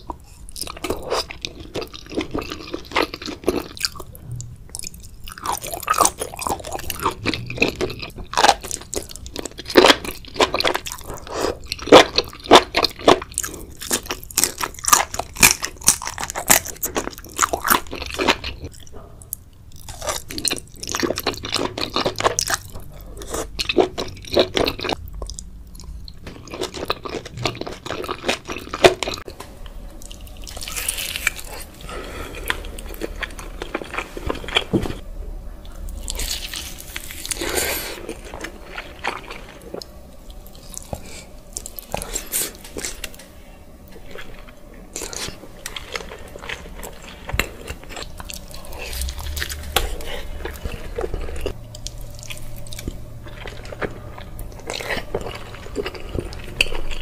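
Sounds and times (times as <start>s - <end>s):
wet chewing with crackling clicks: 44.0s - 57.0s.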